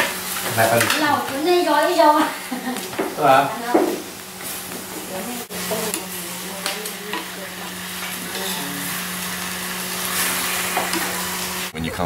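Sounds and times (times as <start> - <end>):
greens sizzling in a wok: 0.0 - 11.8
utensil scraping a pan: 5.7 - 11.7.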